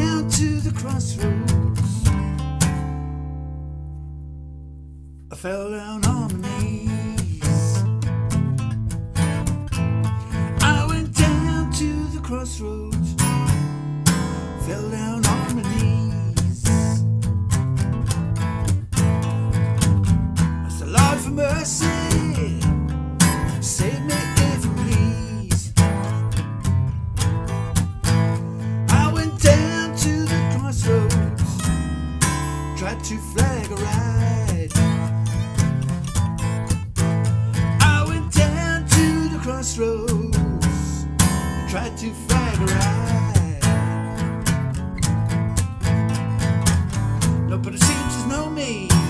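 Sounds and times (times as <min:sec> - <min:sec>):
acoustic guitar blues accompaniment: 0:00.0 - 0:49.0.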